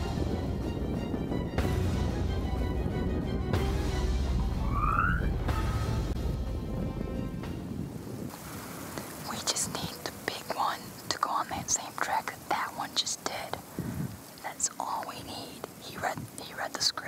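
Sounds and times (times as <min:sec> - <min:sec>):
person whispering: 0:09.2 - 0:13.7, 0:14.3 - 0:17.0.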